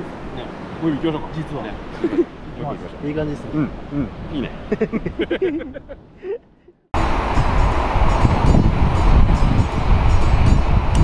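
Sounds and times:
surf running up beach: 0:00.0 - 0:06.4, 0:07.0 - 0:11.0
wind buffeting microphone: 0:07.0 - 0:11.0.

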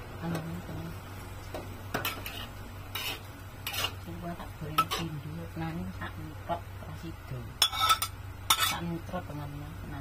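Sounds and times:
spatula scraping a wok: 0:01.9 - 0:04.2, 0:04.8 - 0:05.2, 0:07.6 - 0:08.9.

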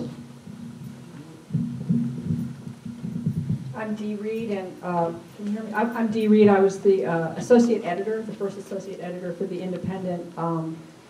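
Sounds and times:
microphone handling bumps: 0:00.0 - 0:06.7.

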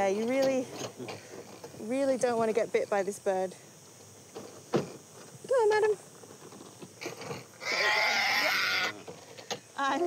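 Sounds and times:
parrot screeching: 0:07.6 - 0:09.0
parrot sliding call: 0:07.6 - 0:09.0.

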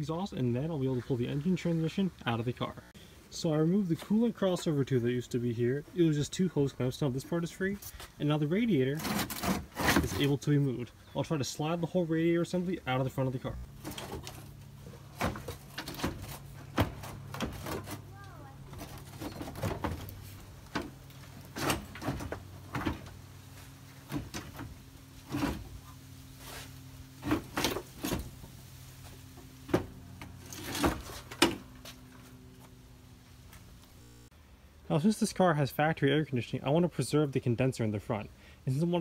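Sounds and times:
steady low hum: 0:00.0 - 0:35.2.

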